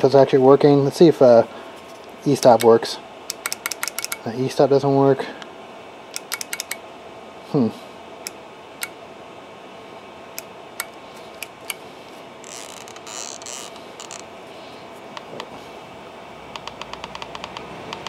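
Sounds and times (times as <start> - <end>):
faint electrical hum: 0.0 - 18.0.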